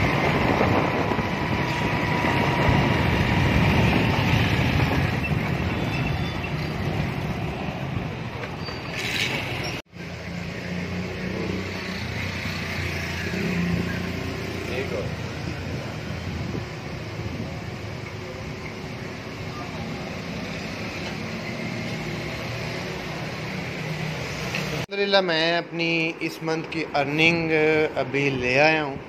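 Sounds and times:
road traffic: 0.0s - 29.0s.

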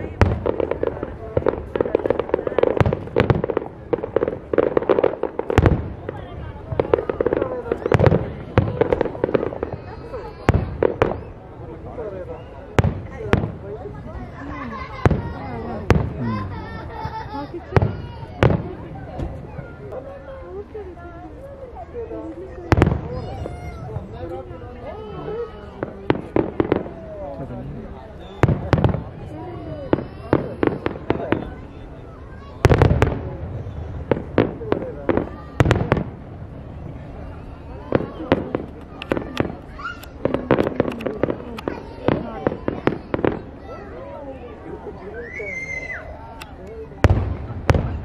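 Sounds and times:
crackling bangs: 0.0s - 14.1s, 15.0s - 16.9s, 17.6s - 20.0s, 22.7s - 24.4s, 25.7s - 31.7s, 32.6s - 43.6s, 46.4s - 48.0s
fireworks booming: 0.0s - 48.0s
people's voices: 0.0s - 48.0s.

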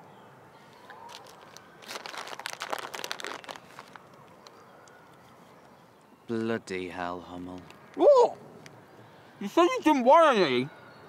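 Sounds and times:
plastic bag crinkling: 0.9s - 4.6s.

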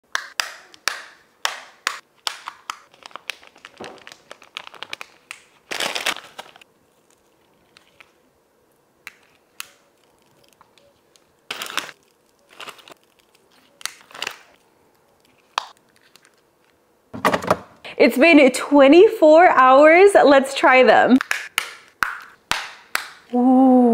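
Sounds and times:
packets crinkling and rustling: 2.2s - 8.2s, 9.1s - 16.8s.

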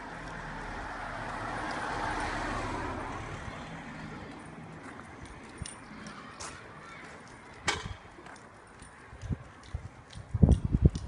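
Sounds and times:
car passing: 0.0s - 9.1s
footsteps clicking on pavement: 0.0s - 11.0s.

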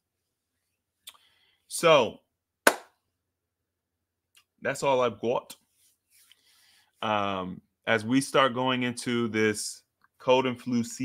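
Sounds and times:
hand clap: 2.7s - 2.9s.

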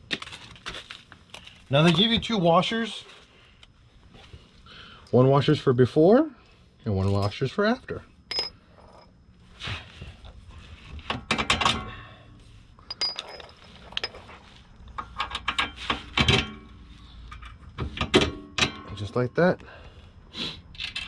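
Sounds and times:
metal bolt and washers clinking: 8.3s - 9.1s, 12.8s - 14.4s, 15.0s - 19.2s, 20.7s - 21.0s.

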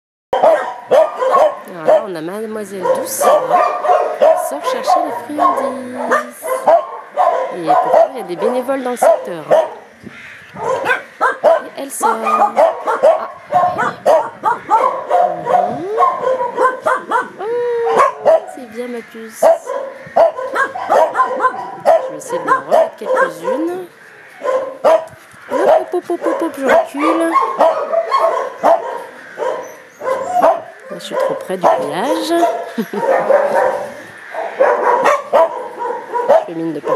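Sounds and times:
dog barking: 0.3s - 9.9s, 10.6s - 18.6s, 19.4s - 36.9s.

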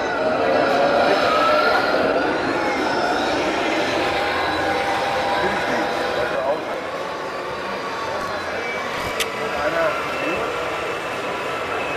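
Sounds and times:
electronic engine sound: 0.0s - 11.9s
murmur of many voices: 0.0s - 11.9s
toy tank driving on tracks: 0.0s - 11.9s.

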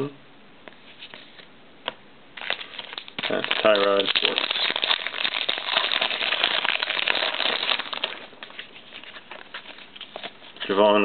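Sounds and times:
cards being shuffled: 2.4s - 10.8s.

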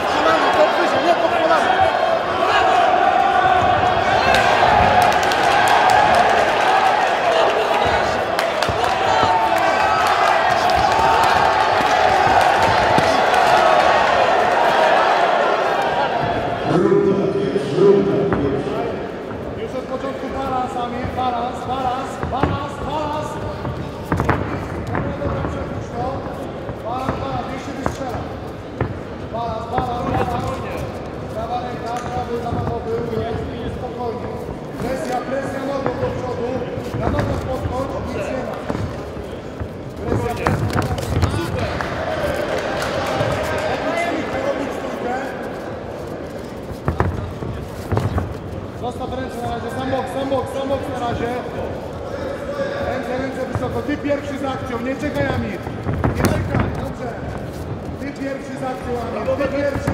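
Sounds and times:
people shouting: 0.0s - 16.6s.

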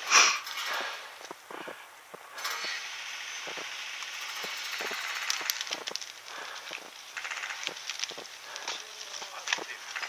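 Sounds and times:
dry grass and brush rustling: 0.0s - 10.0s.

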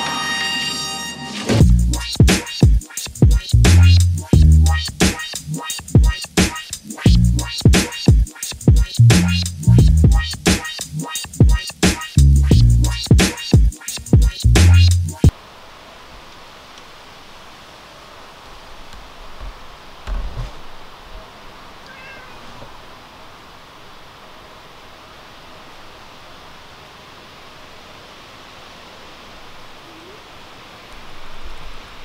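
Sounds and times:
quiet background hiss: 15.3s - 32.0s
cat meowing faintly: 21.8s - 22.8s, 29.8s - 30.4s.

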